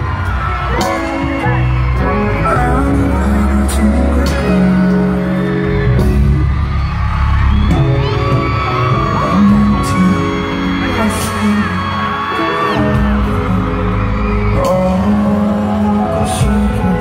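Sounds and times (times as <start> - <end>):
audience screaming cheers: 0.0 - 17.0
loud live concert music: 0.0 - 17.0.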